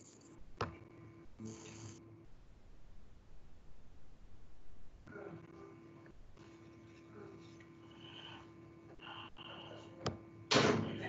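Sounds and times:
faint room noise: 0.0s - 11.0s
steady electrical hum: 0.0s - 11.0s.

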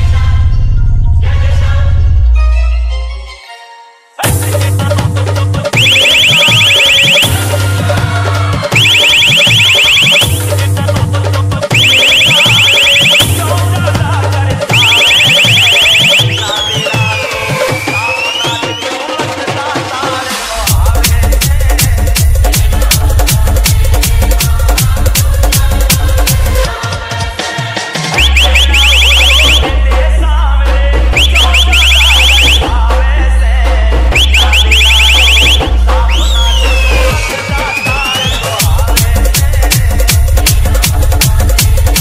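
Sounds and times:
dance music: 4.2s - 42.0s
pulsing bass line: 4.4s - 16.8s, 20.7s - 26.7s, 28.2s - 37.2s, 38.6s - 42.0s
alarm-like synth chirps: 5.7s - 7.6s, 8.7s - 10.6s, 11.7s - 13.6s, 14.7s - 17.2s, 28.2s - 29.8s, 31.2s - 32.7s, 34.2s - 35.7s.

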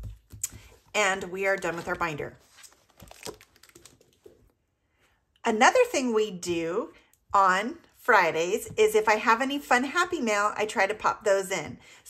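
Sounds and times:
paper rustling: 0.0s - 4.5s.

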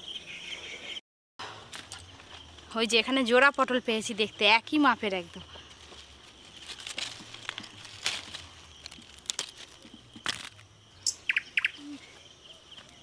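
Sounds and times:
small birds chirping: 1.9s - 13.0s
gourds snapping off vine: 6.6s - 10.7s.

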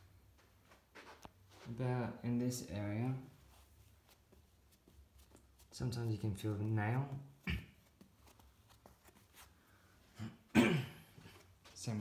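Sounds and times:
hand scratching over carpet: 3.4s - 7.0s, 7.8s - 9.7s.

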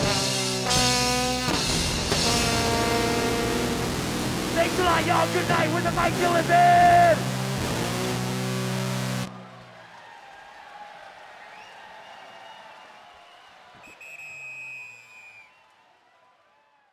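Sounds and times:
band final held chord: 0.0s - 9.3s.

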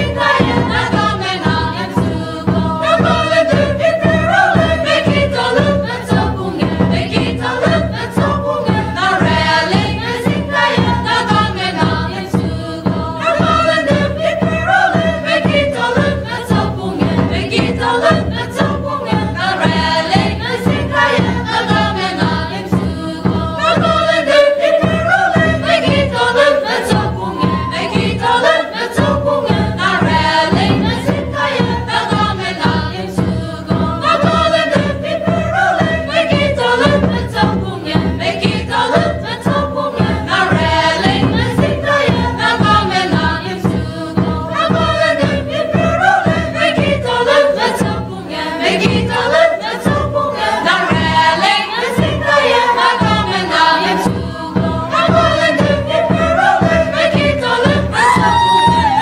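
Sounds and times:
choir singing: 0.0s - 59.0s.

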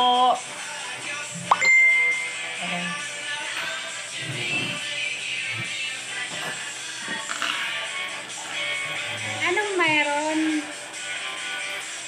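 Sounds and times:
background music: 0.0s - 12.0s
electronic ding: 1.5s - 2.5s
high steady tone: 1.5s - 3.0s.

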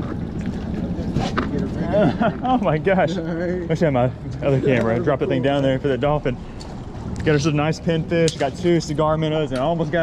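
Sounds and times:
water noise around boat: 0.0s - 10.0s.

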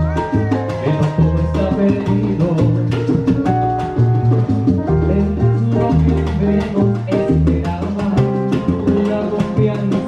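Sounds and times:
live salsa band playing: 0.0s - 10.0s.

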